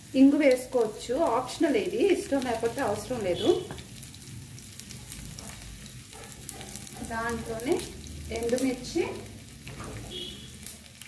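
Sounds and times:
oil sizzling in pan: 0.0 - 11.0.

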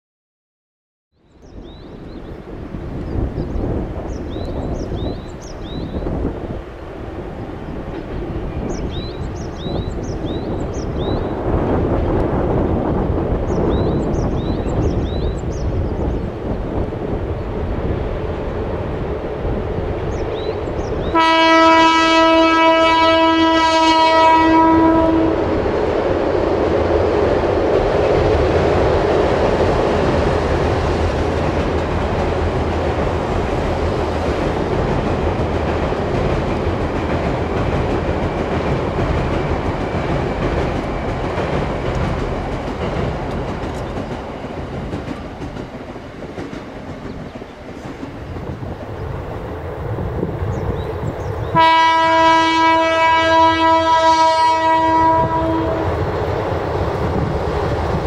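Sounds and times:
train rumbling over steel bridge: 1.2 - 58.0
rail clatter: 2.5 - 58.0
train horn blast: 21.0 - 25.6, 51.5 - 56.1.

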